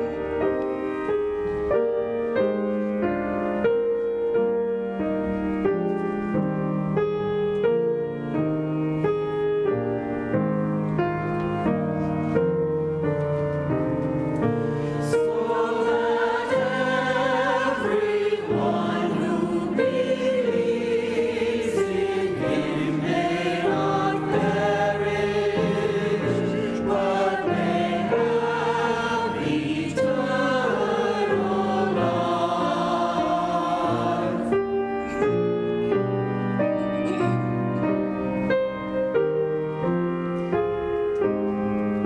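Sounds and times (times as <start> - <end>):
mixed choir singing: 15.0 - 34.8.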